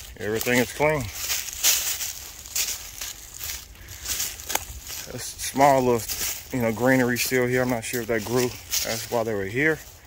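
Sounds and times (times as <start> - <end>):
footsteps on dry pine needles: 0.0 - 10.0.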